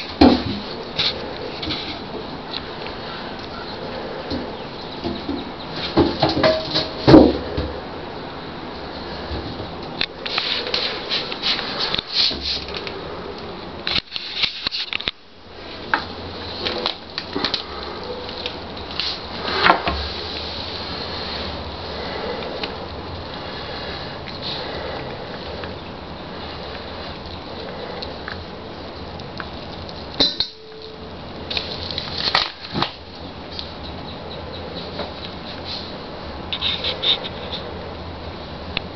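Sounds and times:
knocks scrapes and rustles: 0.0s - 2.3s, 4.1s - 7.8s, 9.2s - 12.9s, 18.4s - 22.8s, 36.5s - 37.7s
steady hiss: 0.0s - 38.9s.

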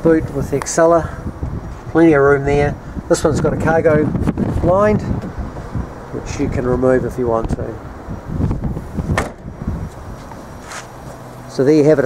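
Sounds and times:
low rumbling wind: 0.0s - 12.0s
microphone handling noise: 3.6s - 5.9s, 7.4s - 11.2s
thump: 9.1s - 9.5s.

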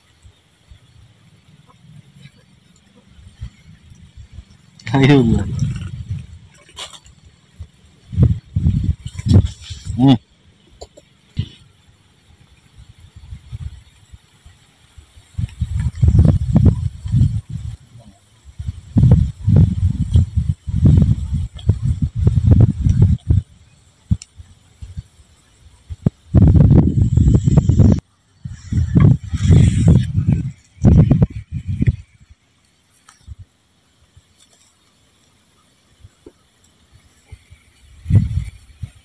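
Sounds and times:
wind buffeting microphone: 0.0s - 32.4s, 35.9s - 39.0s.

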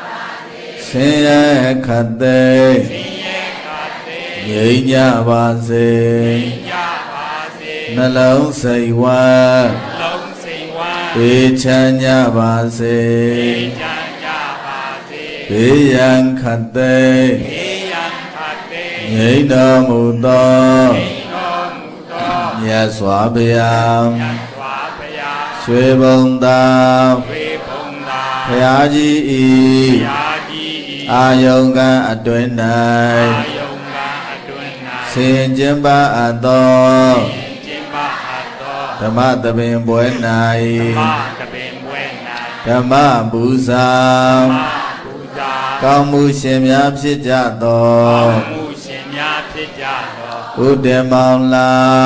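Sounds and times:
man chanting: 0.8s - 52.0s.

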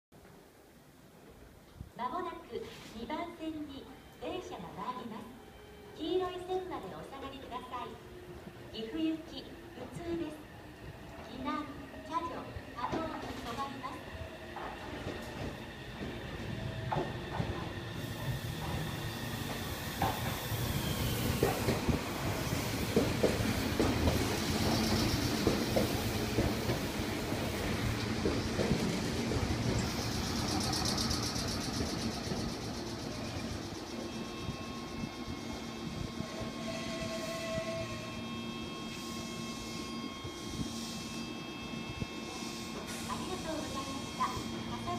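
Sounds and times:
standing train humming: 3.8s - 44.9s.

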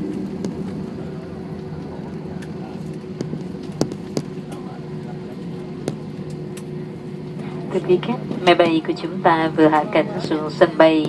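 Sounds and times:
aircraft cabin rumble: 0.0s - 11.0s
woman making announcement: 7.6s - 11.0s.

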